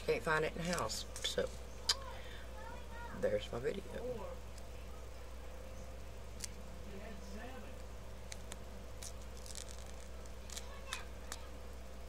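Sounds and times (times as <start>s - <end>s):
steady low hum: 0.0s - 12.0s
plastic sheet crinkling: 8.3s - 11.4s.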